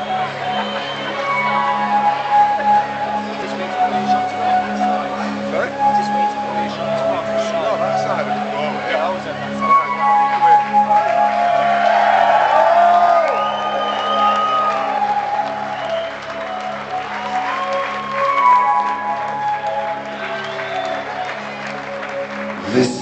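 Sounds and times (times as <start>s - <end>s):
audience cheering and whistling: 0.0s - 4.0s, 9.6s - 22.6s.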